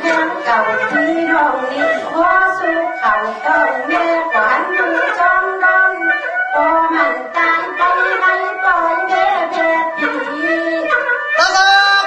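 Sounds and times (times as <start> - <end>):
high voice singing long notes: 0.0 - 12.0.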